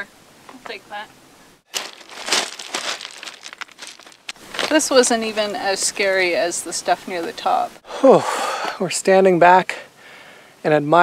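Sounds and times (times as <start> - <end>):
footsteps crunching on scree: 1.7 - 5.8.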